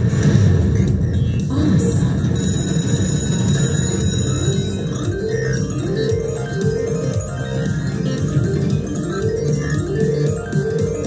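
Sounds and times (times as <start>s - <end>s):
slot machine bonus music: 0.0s - 11.0s.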